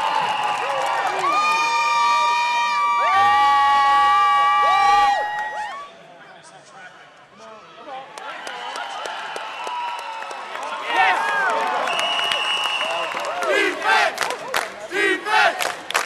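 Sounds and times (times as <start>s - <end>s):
women screaming cheers: 0.0s - 5.9s
crowd noise: 0.0s - 16.0s.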